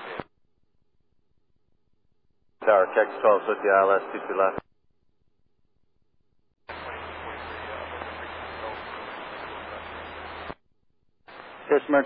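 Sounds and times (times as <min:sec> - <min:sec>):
radio static hiss: 0:00.0 - 0:00.2, 0:02.6 - 0:04.6, 0:06.7 - 0:10.6, 0:11.3 - 0:12.0.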